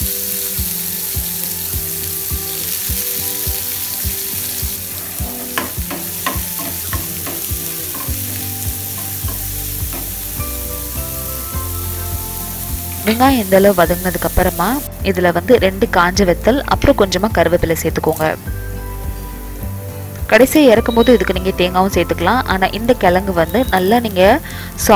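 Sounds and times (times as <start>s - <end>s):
onions sizzling in hot oil: 0.0s - 24.9s.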